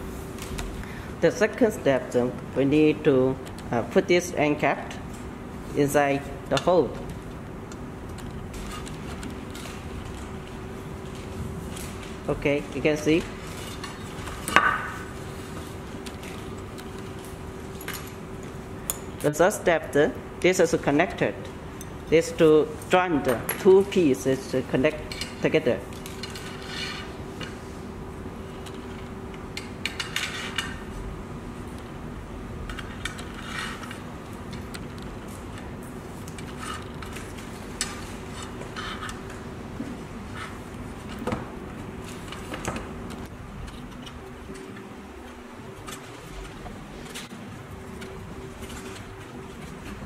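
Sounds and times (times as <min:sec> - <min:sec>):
steady low hum: 0:00.0 - 0:50.0.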